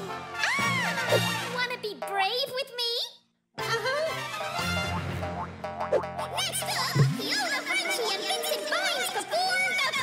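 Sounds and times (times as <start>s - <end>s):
cartoon background music: 0.0s - 2.8s, 3.6s - 10.0s
springy boing effects: 4.9s - 6.2s.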